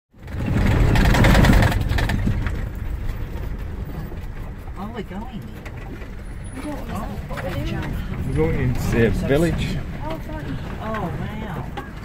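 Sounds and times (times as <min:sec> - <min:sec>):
rattling inside vehicle cabin: 0:00.1 - 0:12.0
vehicle engine and road rumble: 0:00.1 - 0:12.0.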